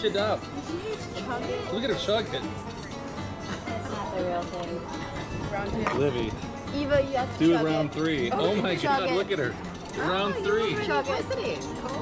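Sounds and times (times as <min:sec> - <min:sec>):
background music: 0:00.0 - 0:12.0
people calling out and chatting: 0:00.0 - 0:12.0.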